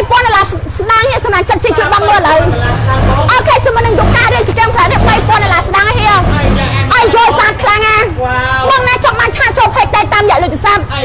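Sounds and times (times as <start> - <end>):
woman talking: 0.0 - 2.5, 3.3 - 11.0
low steady rumble: 0.0 - 11.0.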